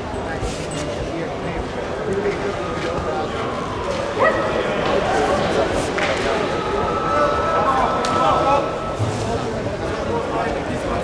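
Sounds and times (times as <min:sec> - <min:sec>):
murmur of voices in hall: 0:00.0 - 0:11.0.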